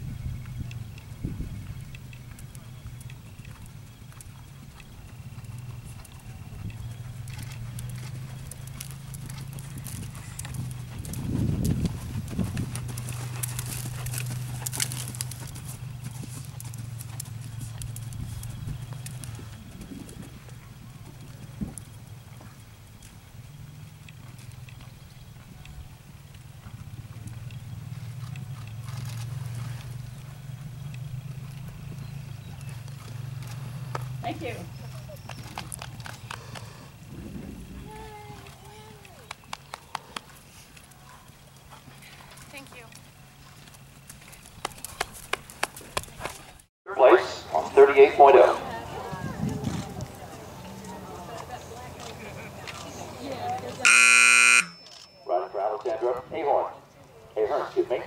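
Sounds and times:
horse hooves trotting on sand: 0.0 - 58.0.

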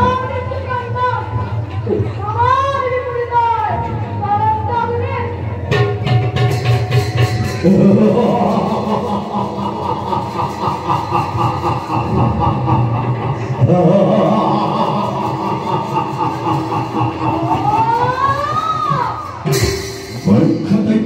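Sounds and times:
steady low drone: 7.4 - 19.6
drawn-out pitched vocals: 7.6 - 19.5.

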